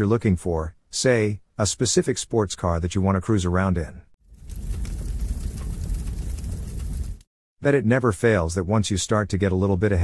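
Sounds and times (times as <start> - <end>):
low rumbling noise: 4.3 - 7.2.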